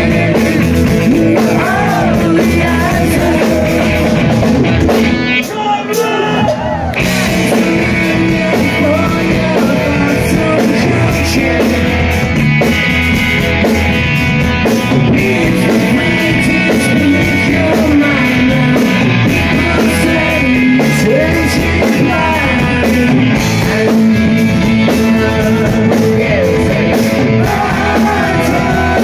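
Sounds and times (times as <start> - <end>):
lead vocal singing: 0.0 - 4.7, 5.4 - 12.4, 14.6 - 29.0
live rock band playing: 0.0 - 29.0.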